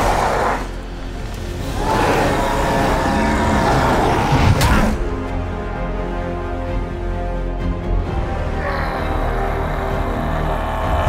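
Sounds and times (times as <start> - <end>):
film score music held notes: 0.0 - 11.0
woman roaring: 8.5 - 11.0.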